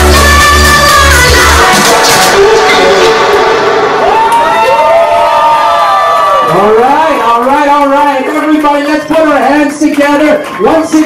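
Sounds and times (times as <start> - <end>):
people clapping: 0.0 - 2.8, 4.0 - 11.0
dance music: 0.0 - 11.0
crowd cheering and whooping: 0.1 - 7.2.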